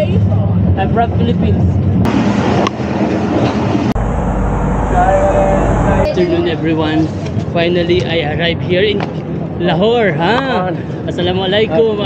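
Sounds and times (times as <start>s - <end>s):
train carriage running noise: 0.0s - 9.5s
people talking: 4.9s - 12.0s.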